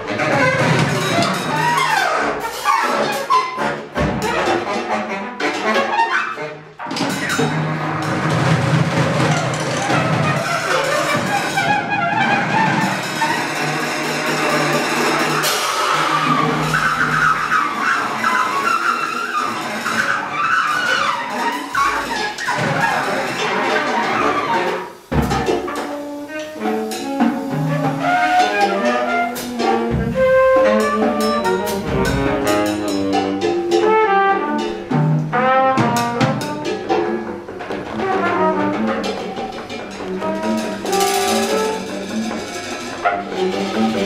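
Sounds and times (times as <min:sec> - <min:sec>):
baritone saxophone: 0:00.0 - 0:08.2, 0:09.9 - 0:44.0
drums: 0:00.0 - 0:44.0
free jazz ensemble: 0:00.0 - 0:44.0
trumpet: 0:00.0 - 0:44.0.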